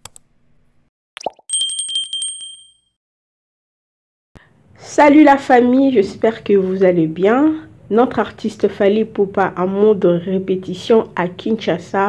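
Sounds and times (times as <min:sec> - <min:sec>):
bright bell ring with trill: 0:01.5 - 0:03.0.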